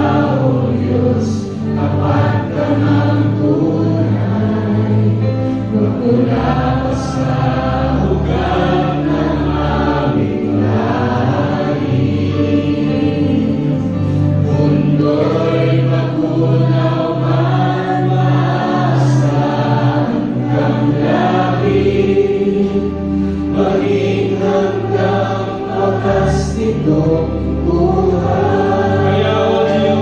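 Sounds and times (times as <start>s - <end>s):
voices singing: 0.0s - 30.0s.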